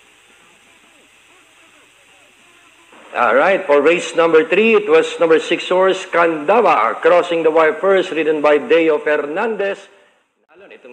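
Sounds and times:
faint voices murmuring: 0.0s - 3.7s
broadcast hiss: 0.0s - 10.9s.

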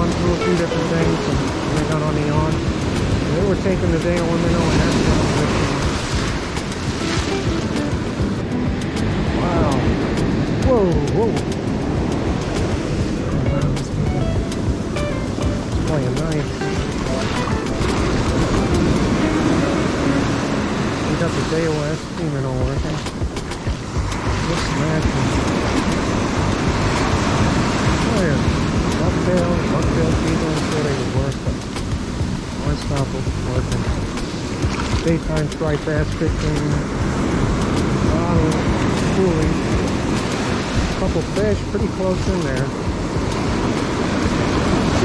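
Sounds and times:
surf breaking on sand: 0.0s - 45.0s
wavering pitched sound: 13.4s - 21.0s.

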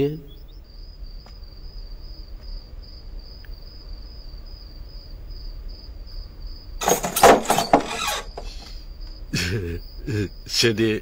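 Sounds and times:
cricket chirping: 0.0s - 11.0s.

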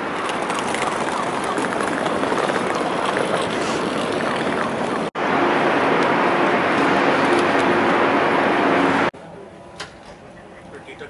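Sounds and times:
faint engine hum: 0.0s - 11.0s
street traffic roar: 0.0s - 11.0s.

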